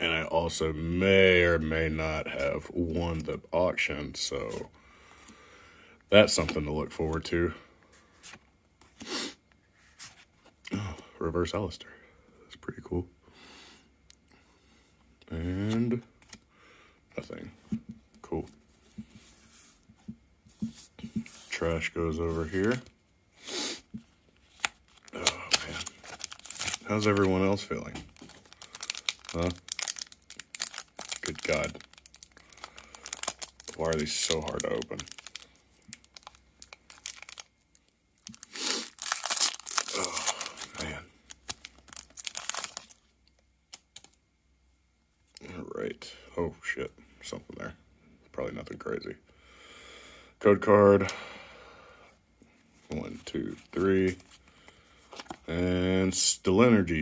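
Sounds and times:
trading cards rustling: 17.2s - 23.0s, 24.0s - 43.1s, 43.7s - 44.2s, 52.9s - 55.5s
foil wrapper tearing: 24.5s - 27.6s, 28.2s - 37.5s, 38.2s - 43.0s
foil wrapper crinkling: 24.5s - 43.1s.

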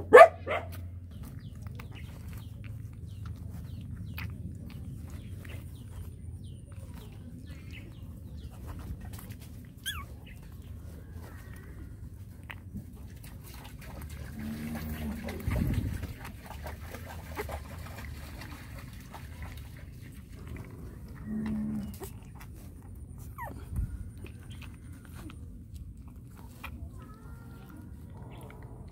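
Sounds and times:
puppy squeak: 9.8s - 10.4s, 23.2s - 23.8s
steady low rumble: 19.5s - 28.9s
puppy suckling from bottle: 21.8s - 28.9s.

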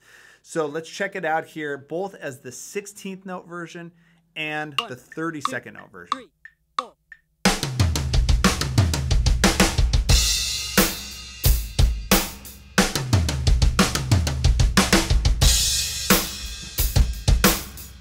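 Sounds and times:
drum fill on snare and toms: 4.8s - 17.8s.

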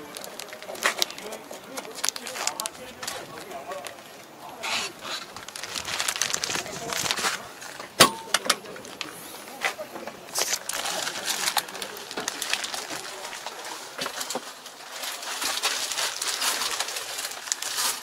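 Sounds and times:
background voices: 0.0s - 17.5s.

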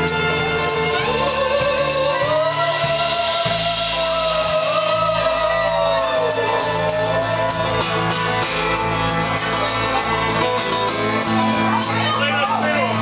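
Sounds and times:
drums: 0.0s - 13.0s
electric guitar: 0.0s - 13.0s
fiddle: 0.0s - 13.0s
strummed acoustic guitar: 0.0s - 13.0s.

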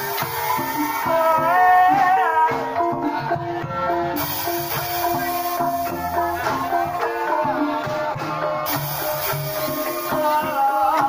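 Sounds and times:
hand drum strokes: 0.0s - 2.2s, 4.2s - 11.0s
gongs and metallophones ringing: 8.7s - 11.0s.

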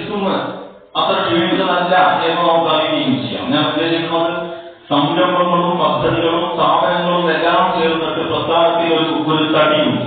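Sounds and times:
man speaking in chant-like voice: 0.0s - 10.0s.

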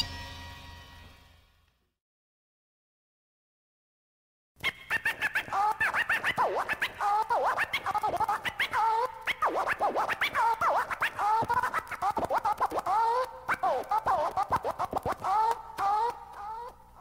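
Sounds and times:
turntable scratching: 4.6s - 16.8s.

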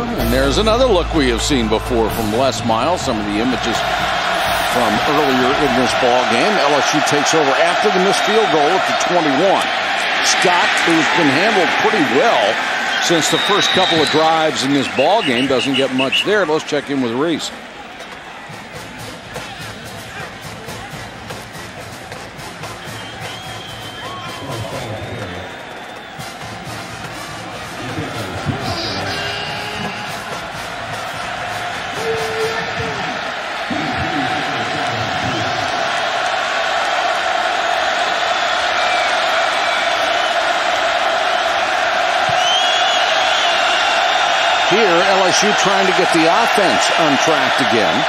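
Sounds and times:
music: 0.0s - 6.4s, 18.4s - 34.4s
stadium crowd roar: 0.0s - 48.0s
people shouting: 27.0s - 42.6s.

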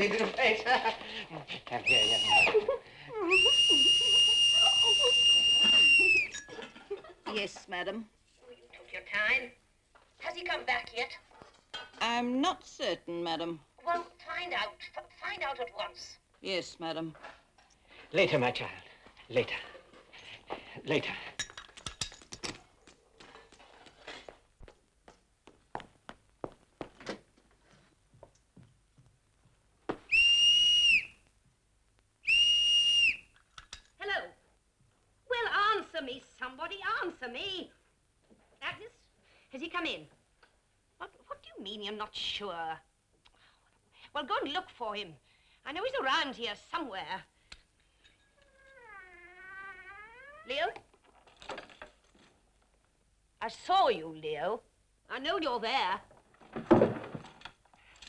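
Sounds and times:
shrill whistle note: 1.9s - 2.6s, 3.3s - 6.4s, 30.1s - 31.2s, 32.2s - 33.3s.

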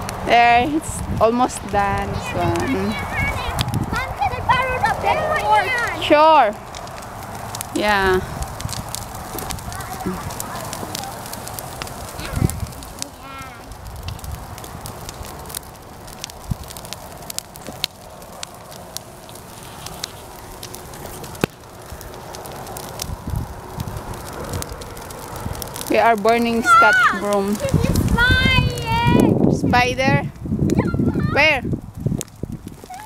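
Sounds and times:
bonfire crackling and popping: 0.0s - 33.0s
steady rushing of fire: 0.0s - 33.0s.

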